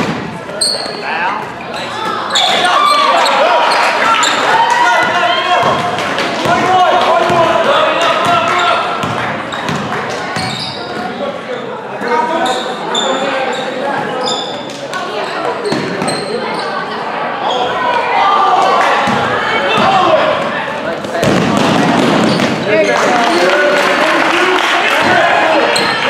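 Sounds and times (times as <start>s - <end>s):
crowd and player voices echoing: 0.0s - 26.0s
shoes squeaking on court: 0.5s - 4.5s, 8.5s - 11.2s, 12.4s - 16.9s, 22.2s - 22.9s.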